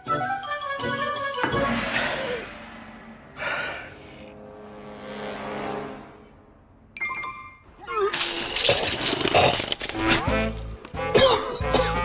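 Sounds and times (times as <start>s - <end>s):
background music: 0.0s - 7.6s, 9.8s - 12.0s
man coughing and sputtering: 11.1s - 12.0s.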